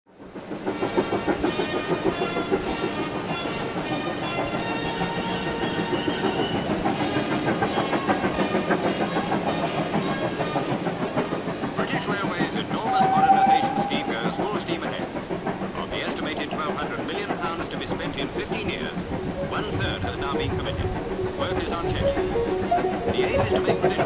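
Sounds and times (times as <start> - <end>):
steam locomotive running: 0.1 - 24.0
rail clatter: 0.2 - 24.0
held pitched tones: 12.6 - 14.9, 18.4 - 24.0.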